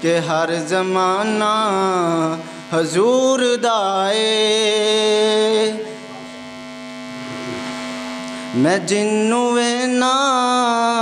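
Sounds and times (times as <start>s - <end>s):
droning hum of held tones: 0.0s - 11.0s.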